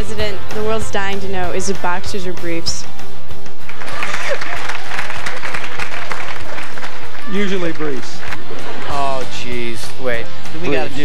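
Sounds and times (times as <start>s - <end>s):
background music: 0.0s - 11.0s
audience applauding: 3.6s - 11.0s
audience laughing: 3.8s - 5.6s, 8.0s - 11.0s.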